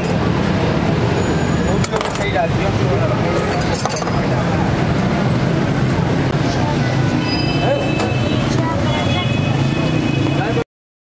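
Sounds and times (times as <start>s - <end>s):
traffic rumble: 0.0s - 10.6s.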